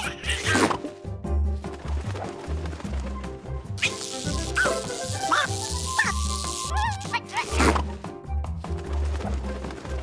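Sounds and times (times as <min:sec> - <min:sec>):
cartoon bird squawks: 0:03.8 - 0:07.6
bouncy cartoon music loop: 0:03.8 - 0:08.2.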